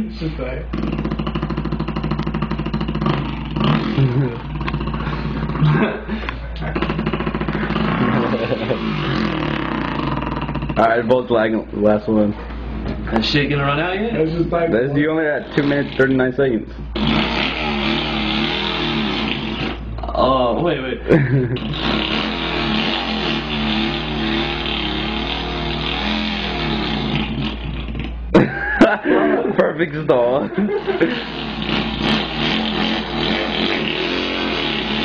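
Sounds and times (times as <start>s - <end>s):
man imitating motorbike engine: 0.6s - 11.0s, 17.0s - 20.5s, 21.1s - 29.5s, 30.4s - 35.0s.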